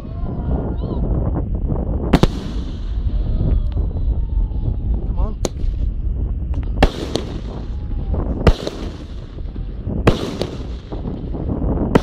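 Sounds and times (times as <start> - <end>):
fireworks rumble and crackle: 0.0 - 12.0
loud firework bang: 2.1 - 3.4, 6.8 - 12.0.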